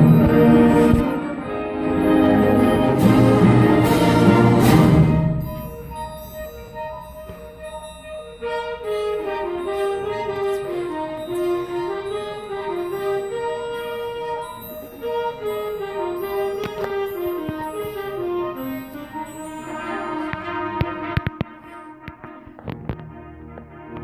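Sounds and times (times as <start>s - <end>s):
concert band playing: 0.0s - 12.7s.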